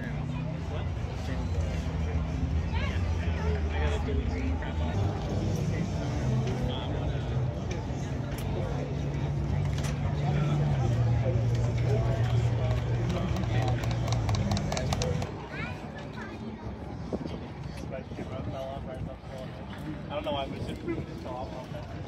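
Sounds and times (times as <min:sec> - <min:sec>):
background chatter: 0:00.0 - 0:22.0.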